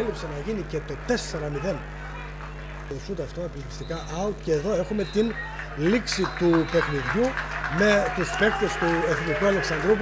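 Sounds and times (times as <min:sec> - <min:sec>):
low buzzing hum: 0:00.0 - 0:10.0
man commentating: 0:00.0 - 0:10.0.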